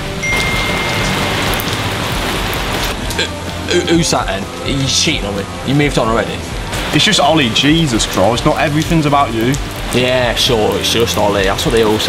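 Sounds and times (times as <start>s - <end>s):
rain hiss: 0.0s - 12.0s
faint high-pitched tone: 0.2s - 1.6s.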